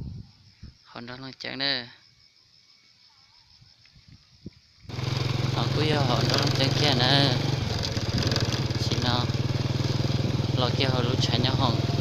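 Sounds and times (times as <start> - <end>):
man talking: 0.9 - 2.0, 5.5 - 7.5, 8.8 - 9.4, 10.5 - 11.9
loud engine-like drone: 4.9 - 12.0.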